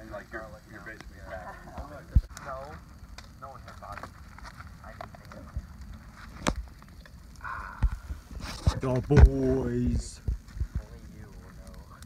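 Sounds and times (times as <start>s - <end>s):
campfire crackling and popping: 0.0s - 12.0s.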